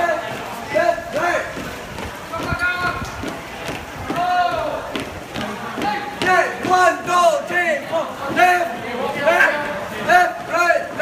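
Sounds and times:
marching footsteps: 0.0 - 11.0.

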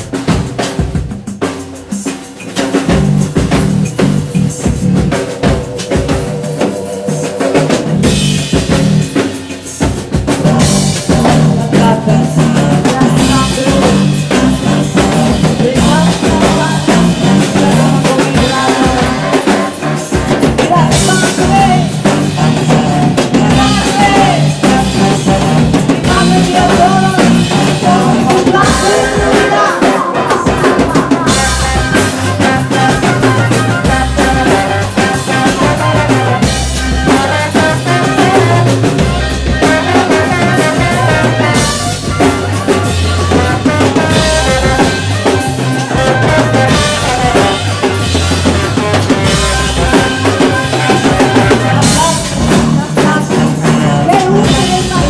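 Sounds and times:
bass drum: 0.0 - 55.0
drum kit steady beat: 0.0 - 55.0
drum rimshots: 0.0 - 55.0
trombone and brass: 1.4 - 55.0.

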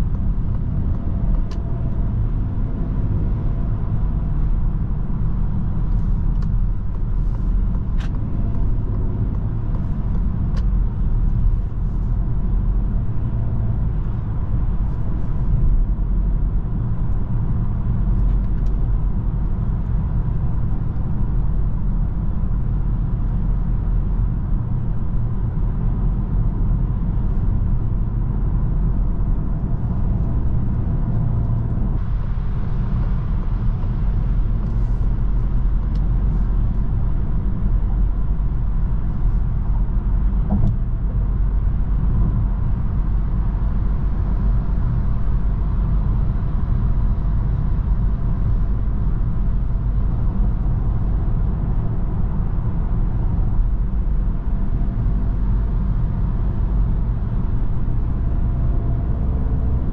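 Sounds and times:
car engine hum: 0.0 - 59.9
road and tyre noise: 0.0 - 59.9.

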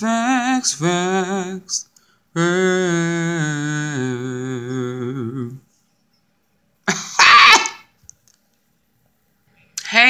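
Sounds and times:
woman coughing: 6.9 - 7.9.

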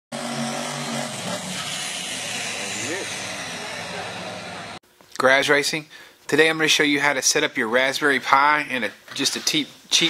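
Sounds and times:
car engine running: 0.1 - 4.8
steady wash of noise: 0.4 - 4.8
voices: 2.3 - 4.8.

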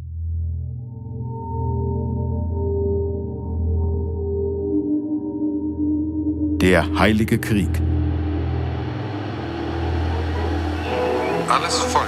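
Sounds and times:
low rumbling drone: 7.8 - 12.0.

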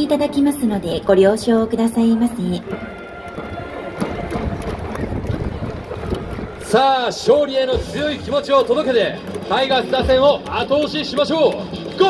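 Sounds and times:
trumpets playing: 2.6 - 7.9.

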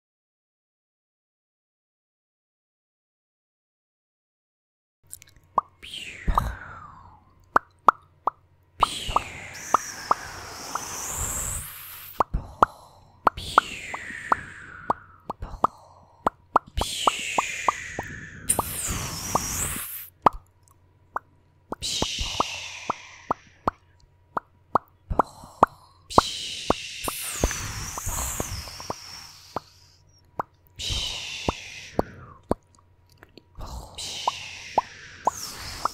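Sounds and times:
falling mouth whooshes: 8.8 - 12.2, 13.3 - 15.7, 16.6 - 20.1, 27.0 - 29.9, 34.2 - 35.9
mouth pops imitating fireworks: 8.8 - 12.3, 16.5 - 20.4, 27.0 - 30.5.

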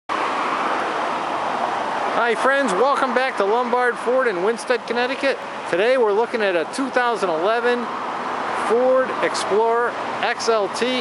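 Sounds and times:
steady rushing noise: 0.1 - 11.0.

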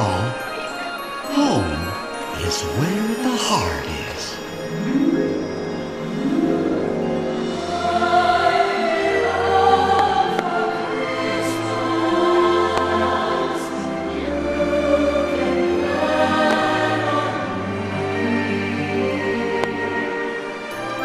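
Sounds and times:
choir singing over loudspeakers: 6.8 - 21.0.

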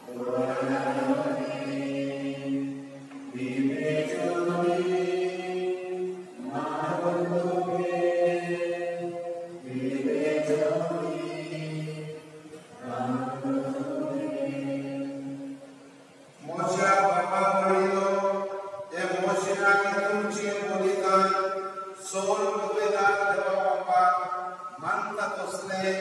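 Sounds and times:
man chanting: 16.4 - 26.0.

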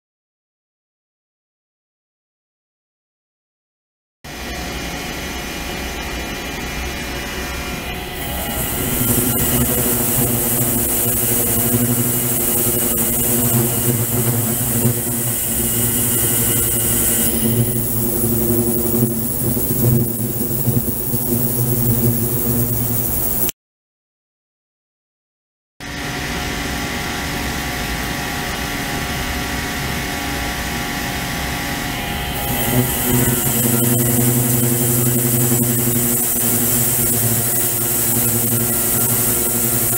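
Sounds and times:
machine hum: 4.3 - 23.5, 26.0 - 39.9
high hiss: 8.2 - 23.5, 32.4 - 39.9.

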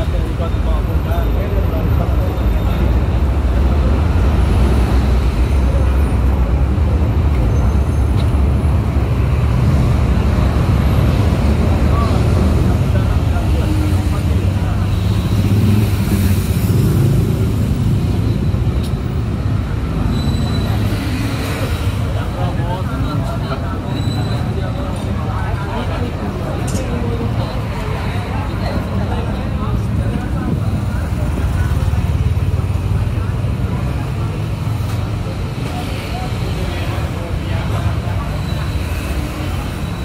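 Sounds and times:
city traffic rumble: 0.0 - 40.0.

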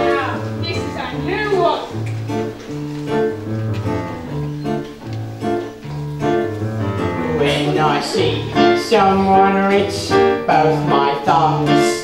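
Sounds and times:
band playing plucked chords and bass: 0.0 - 12.0.

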